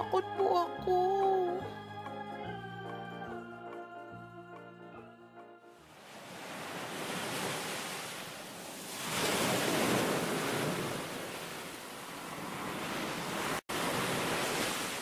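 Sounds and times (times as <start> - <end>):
ocean waves washing in: 5.8 - 15.0.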